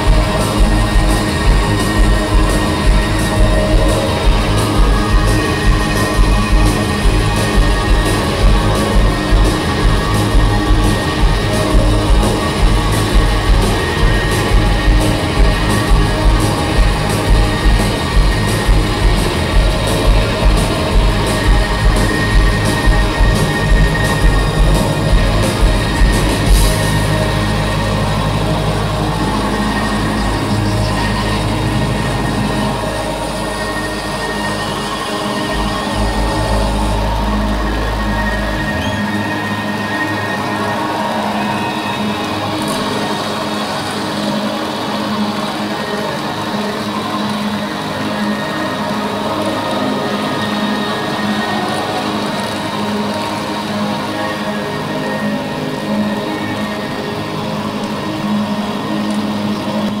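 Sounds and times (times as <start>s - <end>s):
deep bass note: 0.0s - 40.4s
rock band droning held tones: 0.0s - 60.0s.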